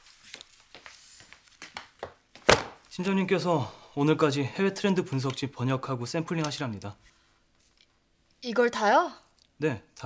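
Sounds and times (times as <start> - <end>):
magazines thumping onto desk: 1.6 - 2.9.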